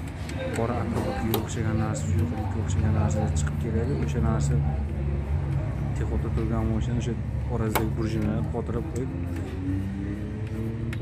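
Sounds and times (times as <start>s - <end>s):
man talking: 0.4s - 4.9s, 5.9s - 9.4s.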